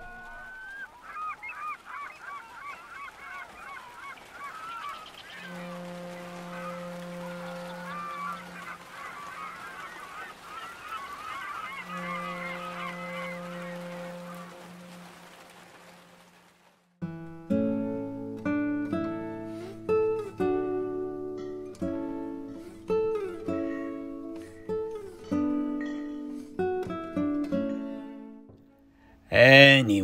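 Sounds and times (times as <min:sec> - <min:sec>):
birds honking: 0:00.0 - 0:16.5
low steady horn note: 0:05.3 - 0:08.7, 0:11.8 - 0:15.4.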